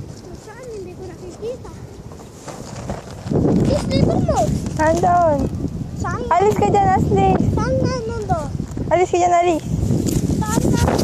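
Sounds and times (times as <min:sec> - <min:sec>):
loud rumbling rub: 0:00.0 - 0:11.0
child's voice: 0:00.2 - 0:02.0, 0:03.6 - 0:09.6, 0:10.4 - 0:11.0.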